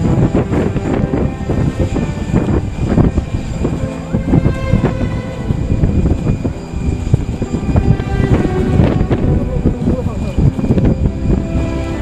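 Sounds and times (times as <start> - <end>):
jet engines running: 0.0 - 12.0
wind rumble on microphone: 0.0 - 12.0.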